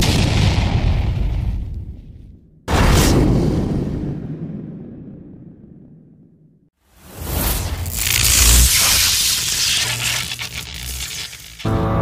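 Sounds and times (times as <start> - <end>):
noisy crackling rush: 7.2 - 11.7.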